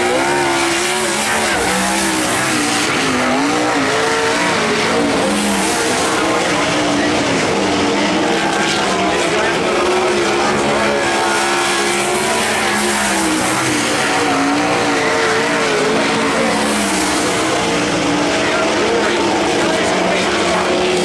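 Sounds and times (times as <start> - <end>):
race car engine revving: 0.0 - 21.0.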